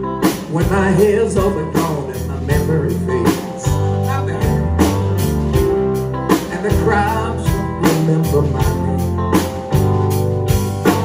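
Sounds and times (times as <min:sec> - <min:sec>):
bass and guitar: 0:00.0 - 0:11.0
drum kit slow beat: 0:00.0 - 0:11.0
man singing into microphone: 0:00.4 - 0:04.9, 0:06.3 - 0:09.2.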